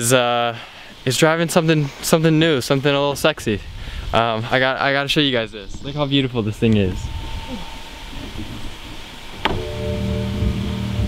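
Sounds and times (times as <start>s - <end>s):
low rumbling noise: 3.1s - 11.0s
car mechanical hum: 5.1s - 11.0s.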